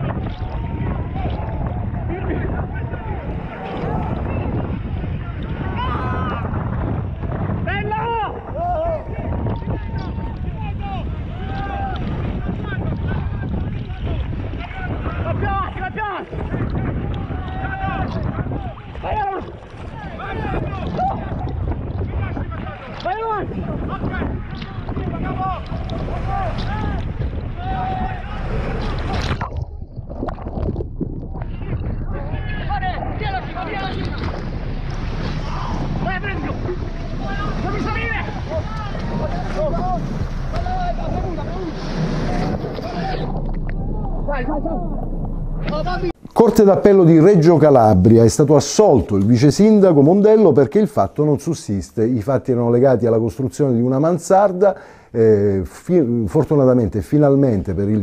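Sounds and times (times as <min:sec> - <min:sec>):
wind rumble on microphone: 0:00.0 - 0:50.8
rough sea: 0:00.0 - 0:58.0
people screaming and wailing: 0:02.8 - 0:06.6, 0:35.2 - 0:46.2.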